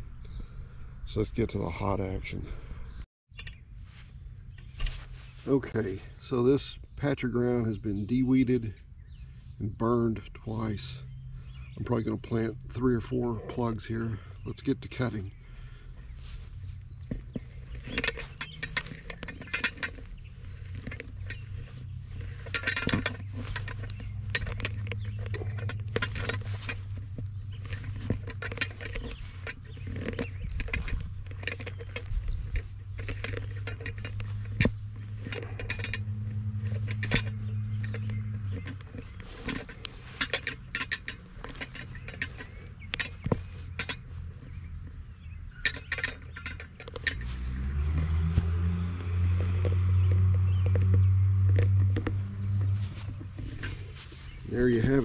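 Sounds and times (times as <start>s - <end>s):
metal tool scraping dirt: 3.3s - 8.5s, 10.3s - 55.0s
steady low hum: 8.6s - 55.0s.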